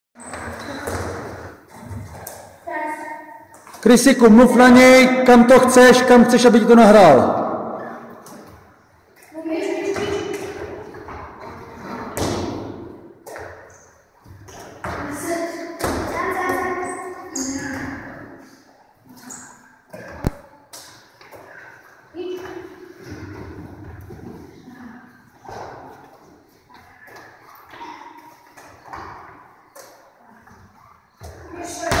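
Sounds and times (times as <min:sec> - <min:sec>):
medicine balls thudding: 0:12.1 - 0:13.6.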